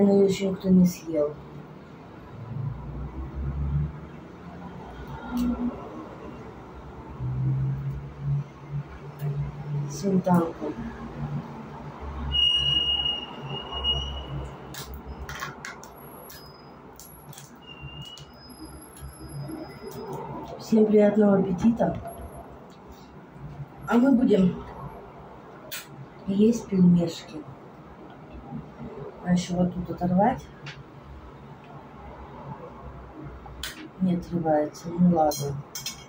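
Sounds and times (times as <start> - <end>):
small crinkles and clicks: 14.8 - 18.3
plastic crackle: 17.0 - 18.4.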